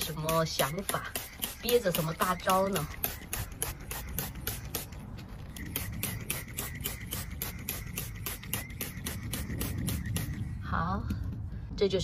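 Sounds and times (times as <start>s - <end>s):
trigger sprayer spraying: 0.0s - 10.6s.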